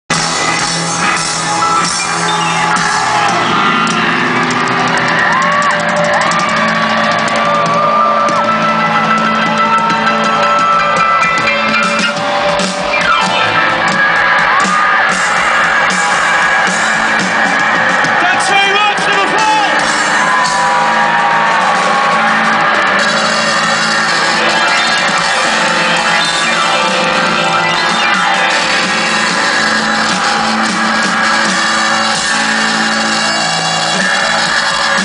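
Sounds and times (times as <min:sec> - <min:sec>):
crowd shouting and whooping: 0:00.1 - 0:35.0
live rock band playing loudly: 0:00.1 - 0:35.0.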